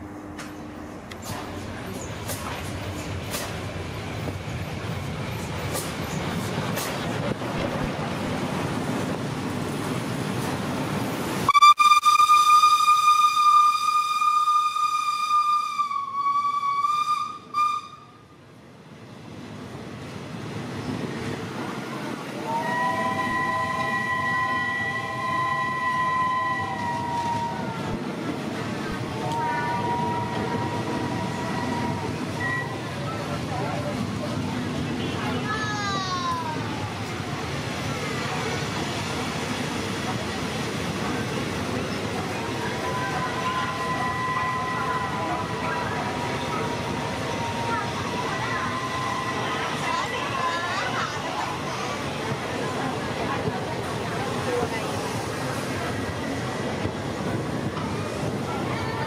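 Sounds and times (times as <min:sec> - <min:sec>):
steam locomotive rumble: 0:00.0 - 0:59.0
train wheels on rails: 0:00.0 - 0:59.0
steam whistle blast: 0:11.5 - 0:18.2, 0:22.4 - 0:27.7, 0:29.2 - 0:32.8, 0:42.8 - 0:46.0.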